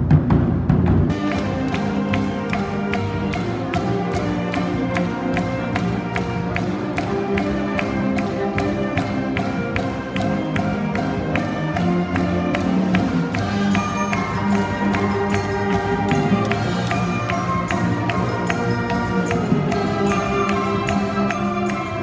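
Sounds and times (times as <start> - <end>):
percussion beat: 0.0 - 22.0
wind band playing: 1.1 - 22.0.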